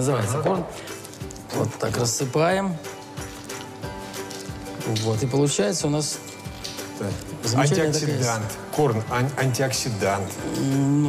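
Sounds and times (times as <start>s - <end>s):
background music with held tones: 0.0s - 11.0s.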